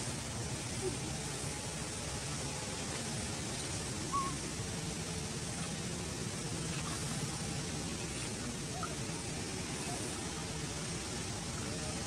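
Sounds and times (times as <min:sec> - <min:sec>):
low outdoor rumble and hiss: 0:00.0 - 0:12.0.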